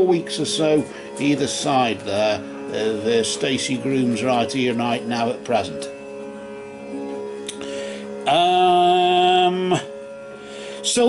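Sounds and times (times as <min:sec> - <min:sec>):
background music drone: 0:00.0 - 0:11.0.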